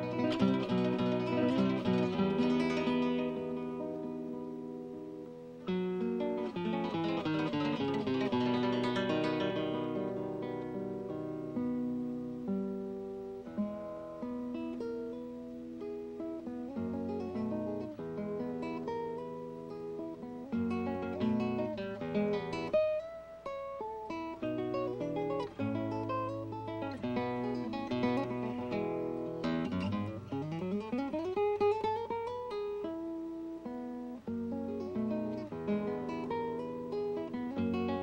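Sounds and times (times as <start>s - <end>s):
classical guitar fingerstyle: 0.0s - 38.0s.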